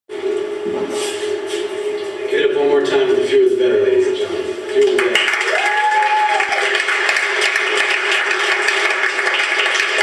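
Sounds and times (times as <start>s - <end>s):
audience noise: 4.6s - 10.0s.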